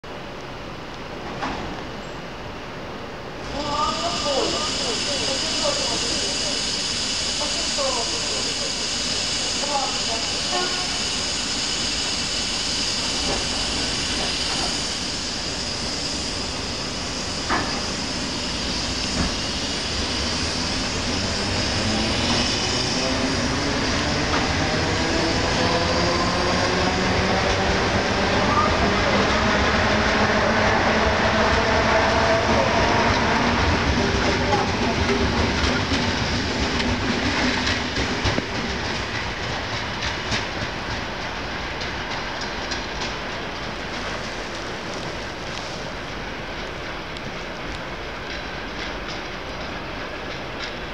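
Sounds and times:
train traction motors whining: 3.5s - 40.5s.

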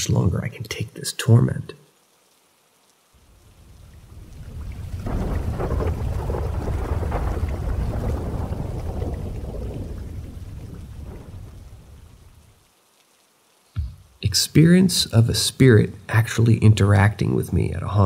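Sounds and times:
rain: 0.0s - 18.0s
thunder rumbling: 3.3s - 12.6s.

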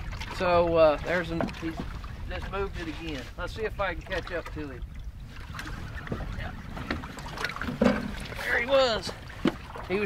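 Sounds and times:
water lapping at boat: 0.0s - 10.0s
wind buffeting microphone: 0.0s - 10.0s.

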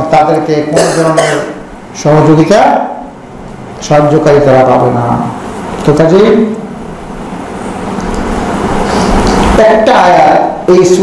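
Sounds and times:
background rumble and hiss: 0.0s - 11.0s.

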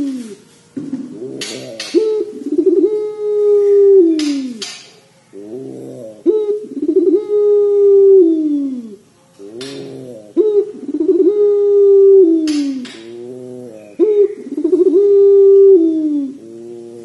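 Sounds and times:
dove cooing with trill: 0.0s - 17.0s.

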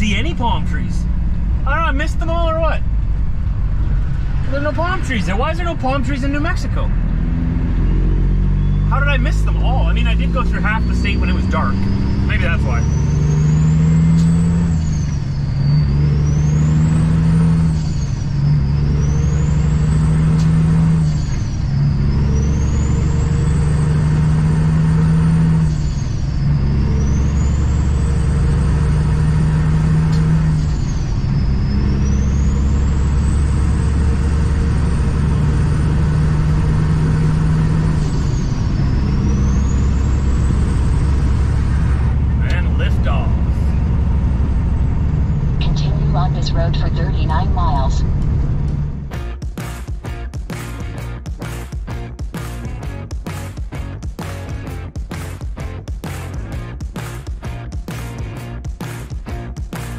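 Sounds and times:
truck diesel engine accelerating: 0.0s - 59.9s.

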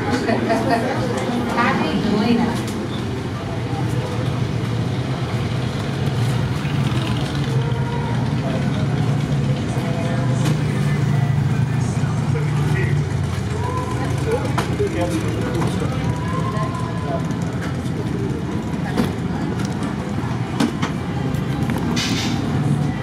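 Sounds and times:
people talking: 0.0s - 5.2s, 7.5s - 23.0s
engine idling: 3.2s - 23.0s.

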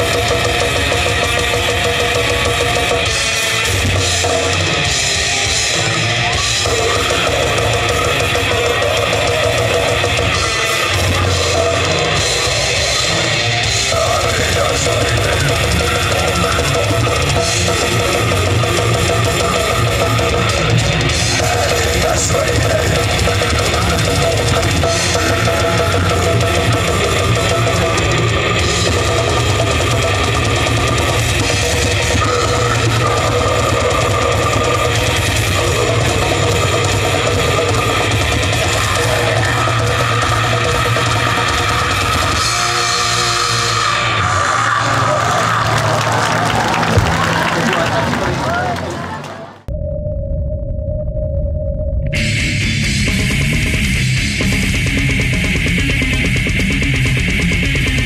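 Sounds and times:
fast drum-kit playing: 0.0s - 49.2s, 52.2s - 58.0s
bass guitar: 0.0s - 58.0s
distorted electric guitars: 0.0s - 58.0s.

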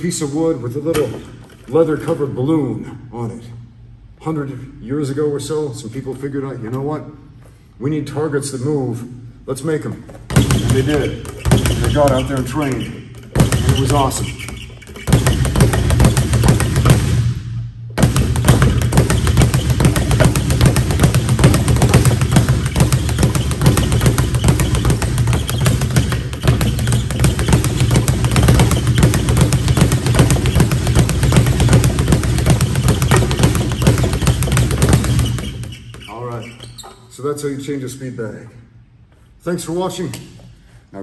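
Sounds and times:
speed bag rattling: 10.3s - 17.1s, 18.0s - 36.0s.

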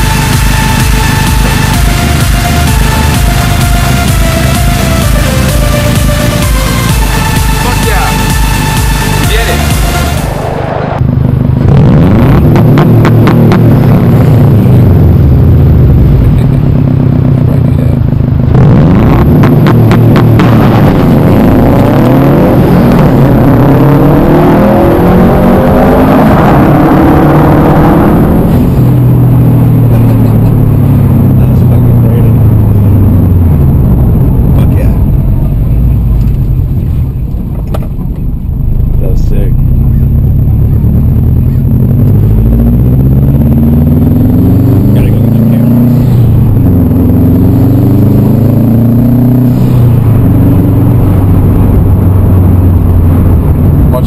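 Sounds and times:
car engine on rev limiter: 0.0s - 54.0s.

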